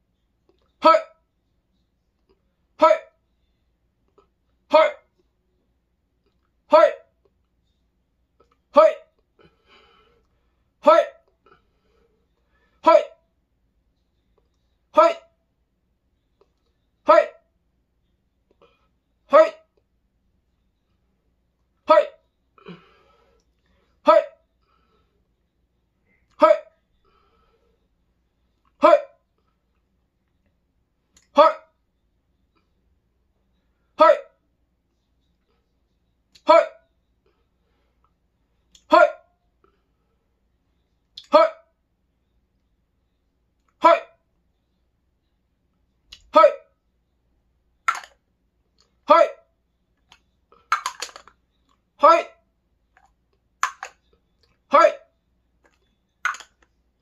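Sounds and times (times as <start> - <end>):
man shouting: 0.8 - 1.2, 2.8 - 3.2, 4.7 - 5.1, 6.7 - 7.1, 8.7 - 9.1, 10.8 - 11.2, 12.8 - 13.2, 15.0 - 15.3, 17.1 - 17.4, 19.3 - 19.7, 21.9 - 22.2, 24.0 - 24.4, 26.4 - 26.7, 28.8 - 29.2, 31.3 - 31.7, 34.0 - 34.4, 36.4 - 36.8, 38.8 - 39.3, 41.2 - 41.7, 43.8 - 44.2, 46.3 - 46.7, 49.1 - 49.5, 52.0 - 52.4, 54.7 - 55.1.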